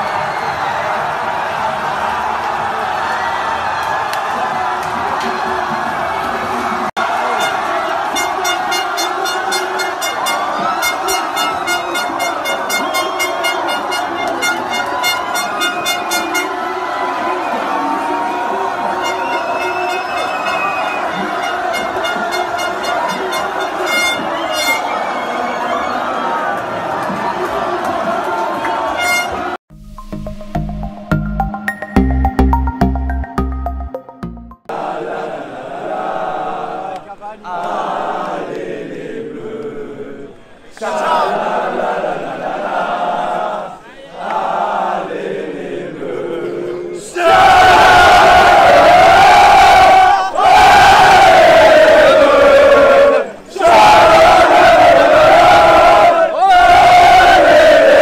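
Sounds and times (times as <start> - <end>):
crowd shouting and cheering: 0.0 - 29.6, 31.2 - 58.0
horns blowing rapid blasts: 7.0 - 16.9, 18.8 - 25.1, 28.8 - 29.6.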